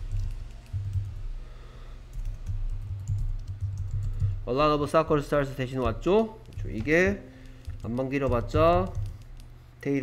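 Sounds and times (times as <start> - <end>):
computer keyboard typing: 0.0 - 1.2, 2.1 - 9.6.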